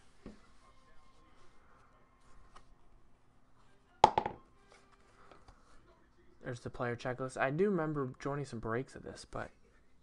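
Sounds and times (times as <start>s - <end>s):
wooden box lid knocking: 4.0s - 4.4s.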